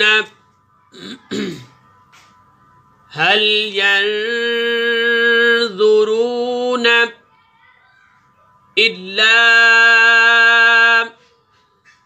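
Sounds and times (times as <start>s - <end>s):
faint steady hum: 0.0s - 12.0s
man clearing throat: 1.0s - 1.8s.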